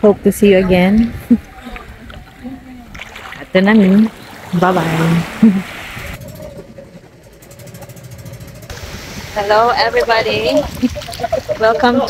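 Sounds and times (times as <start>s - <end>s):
boat engine running: 0.0s - 12.0s.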